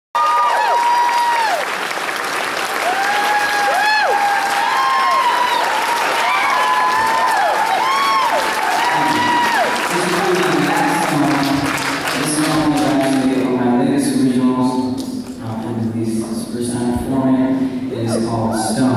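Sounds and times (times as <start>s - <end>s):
audience applauding: 0.2s - 13.5s
person speaking: 9.9s - 18.9s.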